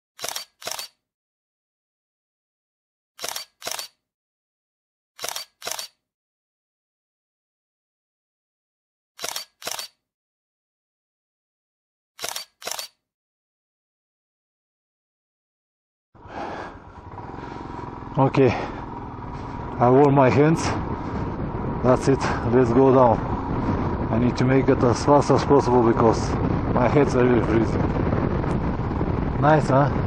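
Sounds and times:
short sharp double clicks: 0:00.2 - 0:01.0, 0:03.2 - 0:04.0, 0:05.2 - 0:06.0, 0:09.2 - 0:10.0, 0:12.2 - 0:13.0.

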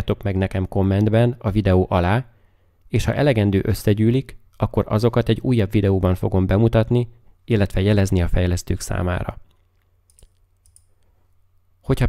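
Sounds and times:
man speaking: 0:00.0 - 0:02.3, 0:02.9 - 0:09.4
computer mouse clicks: 0:09.4 - 0:11.0.

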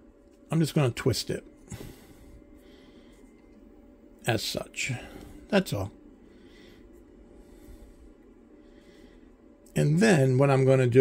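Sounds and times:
faint steady hiss: 0:00.0 - 0:11.0
low hum: 0:00.0 - 0:11.0.

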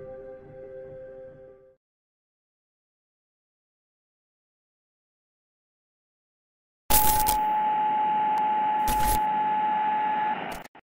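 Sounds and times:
electronic static hiss: 0:06.9 - 0:07.5, 0:08.8 - 0:09.3
glitchy crackles: 0:06.9 - 0:07.5.

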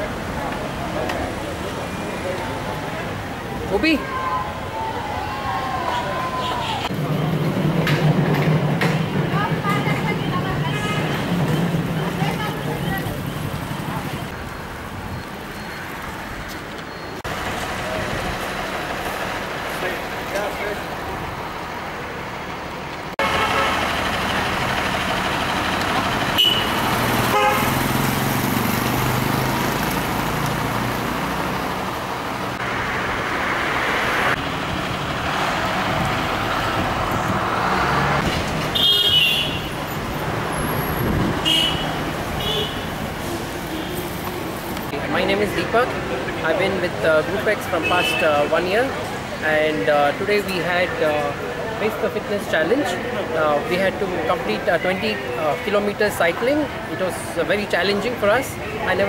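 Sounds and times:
city traffic passing: 0:00.0 - 0:59.0
vehicle horn toots: 0:26.4 - 0:27.9, 0:38.7 - 0:39.8, 0:41.4 - 0:43.0.

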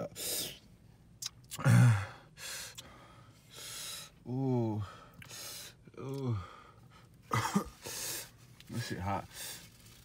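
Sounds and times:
person puffing breaths: 0:04.8 - 0:08.4.

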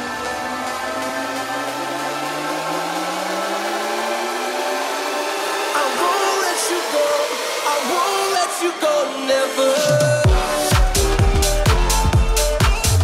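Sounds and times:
wash of noise: 0:00.0 - 0:10.0
synth tone gliding upward: 0:00.0 - 0:12.0
electronic dance music: 0:00.0 - 0:13.0.

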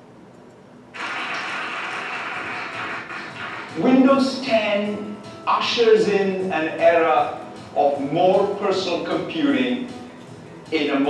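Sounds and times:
steady rushing noise: 0:01.0 - 0:03.9
man's voice: 0:03.8 - 0:10.0, 0:10.7 - 0:11.0.

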